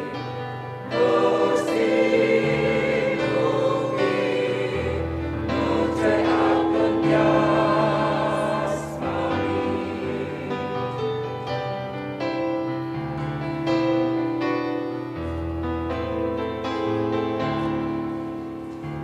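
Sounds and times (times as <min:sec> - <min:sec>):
choir singing a hymn: 0:00.0 - 0:12.4.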